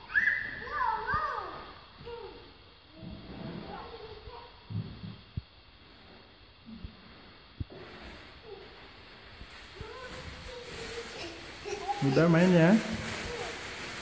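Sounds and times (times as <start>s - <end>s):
children's voices calling and babbling: 0.0s - 2.8s, 9.7s - 14.0s.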